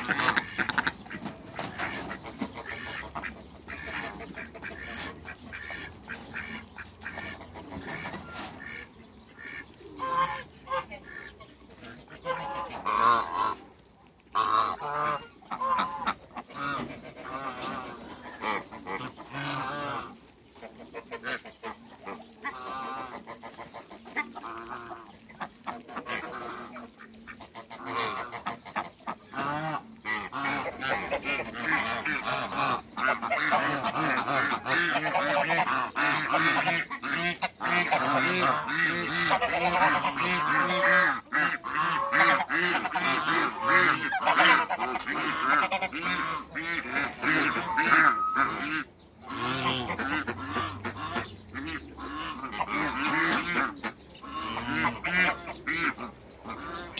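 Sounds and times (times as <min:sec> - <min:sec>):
ducks and geese calling: 0:00.0 - 0:56.9.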